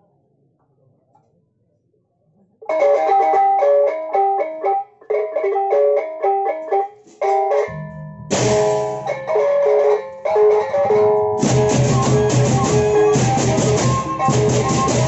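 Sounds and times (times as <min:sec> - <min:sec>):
barrel drums: 0:07.2 - 0:09.6, 0:10.4 - 0:15.0
crashing cymbals: 0:08.3 - 0:09.3.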